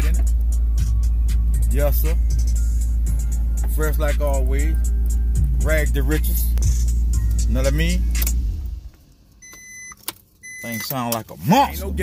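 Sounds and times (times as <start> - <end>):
heavy bass from car stereo: 0.0 - 9.0, 10.5 - 12.0
dashboard chime beep: 9.4 - 10.9.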